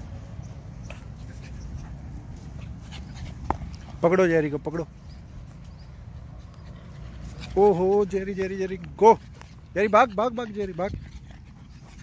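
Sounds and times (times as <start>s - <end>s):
dog sounds: 0.0s - 12.0s.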